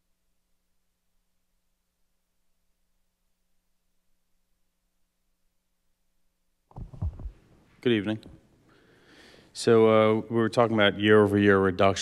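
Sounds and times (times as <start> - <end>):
microphone handling thumps: 6.7 - 7.4
man speaking: 7.8 - 8.4, 9.6 - 12.0.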